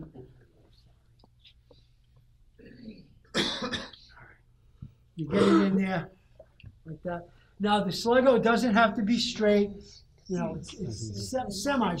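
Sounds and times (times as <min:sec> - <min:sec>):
person coughing: 0:03.3 - 0:04.0, 0:05.3 - 0:05.8.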